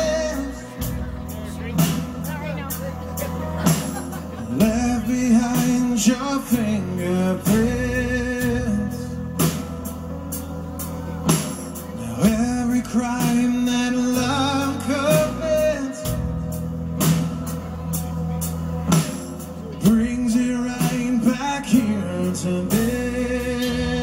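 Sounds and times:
man singing into a microphone: 0:00.0 - 0:01.6, 0:02.7 - 0:09.7, 0:10.6 - 0:16.6, 0:19.7 - 0:24.0
rock band playing: 0:00.0 - 0:24.0.

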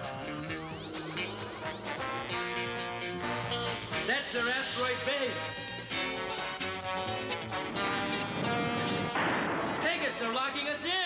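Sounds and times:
cartoon background music: 0:00.0 - 0:10.3
rushing blast effect: 0:07.7 - 0:10.2.

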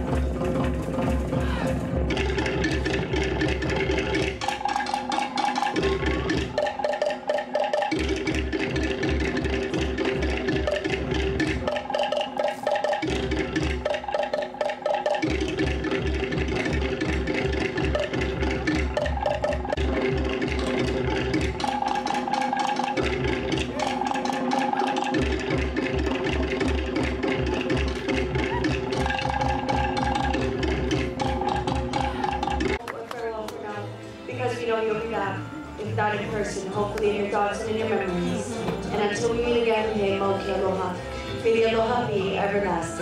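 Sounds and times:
deep drum beat: 0:00.0 - 0:12.1, 0:12.9 - 0:32.8
wooden slit drums struck rapidly: 0:00.0 - 0:32.8.

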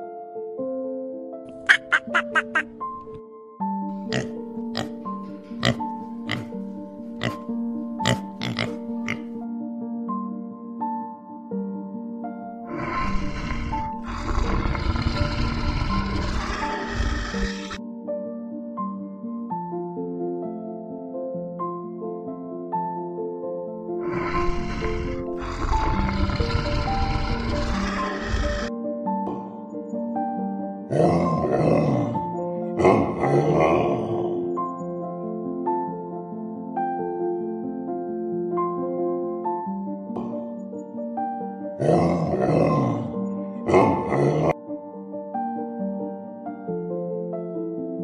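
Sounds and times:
background music: 0:00.0 - 0:48.0
pigs oinking: 0:01.5 - 0:02.7, 0:04.1 - 0:05.0, 0:05.6 - 0:06.6, 0:07.2 - 0:07.4, 0:08.0 - 0:09.3, 0:12.7 - 0:17.8, 0:24.0 - 0:28.7
lion growling: 0:12.7 - 0:17.8, 0:24.0 - 0:28.7, 0:30.9 - 0:34.5, 0:41.8 - 0:44.6.

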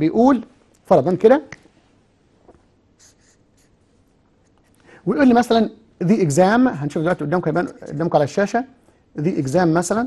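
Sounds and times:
marker pen scratching on paper: 0:03.0 - 0:04.8.

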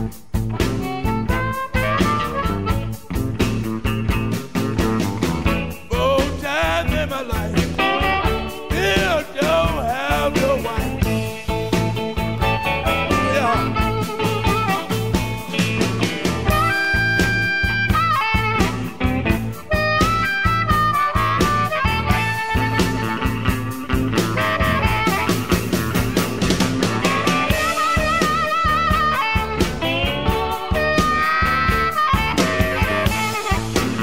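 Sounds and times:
bent wavering lead guitar notes: 0:00.0 - 0:34.0
blues band instrumental: 0:00.0 - 0:34.0.

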